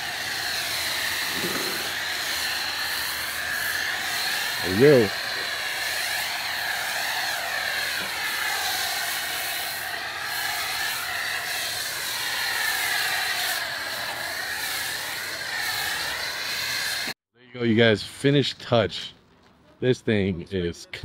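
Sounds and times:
hissing water spray: 0.0 - 17.2
pressure washer whine: 0.0 - 17.2.

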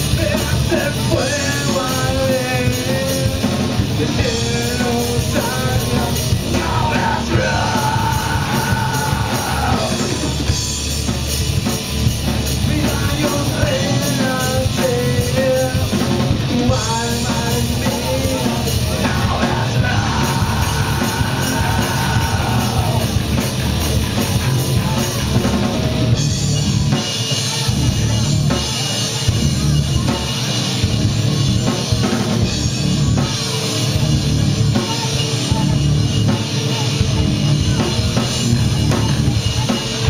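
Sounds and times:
person singing: 0.0 - 10.4, 12.6 - 23.2
live rock band playing: 0.0 - 40.0.

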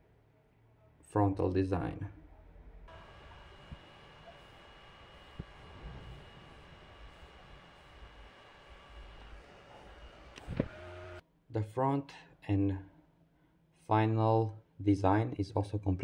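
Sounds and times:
handheld fan whirring: 2.9 - 11.2.

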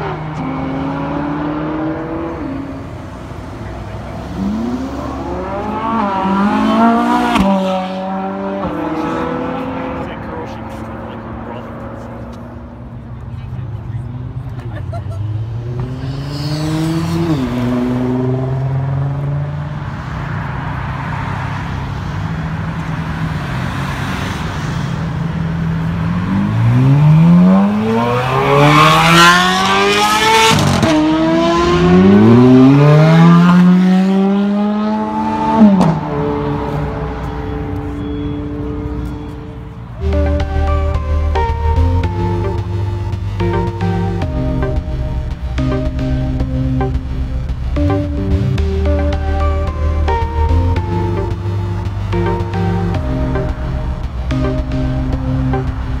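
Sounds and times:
sports car engines accelerating past: 0.0 - 56.0.

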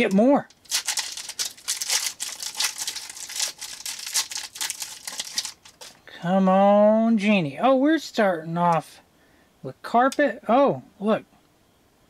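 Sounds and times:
foil wrapper crinkling: 0.0 - 6.0.

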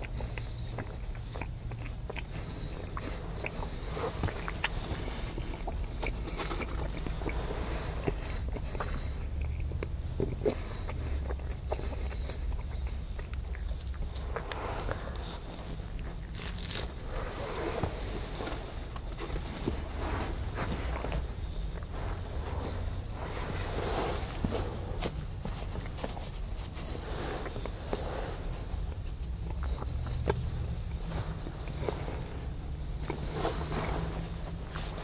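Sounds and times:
toast bitten and chewed: 0.0 - 17.4
steady low hum: 0.0 - 35.0.

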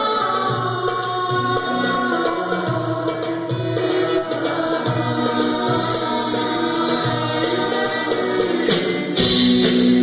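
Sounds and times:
singers in chorus: 0.0 - 9.4
instrumental backing: 0.0 - 10.0.

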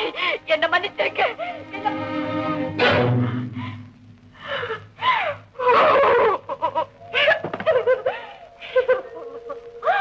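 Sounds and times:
woman's falling vocal sound: 4.8 - 10.0.

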